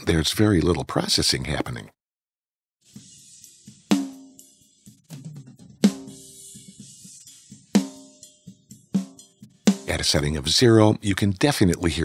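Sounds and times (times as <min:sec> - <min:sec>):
hi-hat and cymbal hiss: 0:02.8 - 0:10.4.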